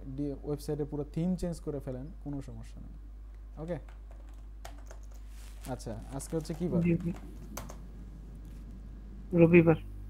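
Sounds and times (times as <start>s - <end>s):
steady low hum: 0.0s - 10.0s
man speaking: 5.6s - 7.2s.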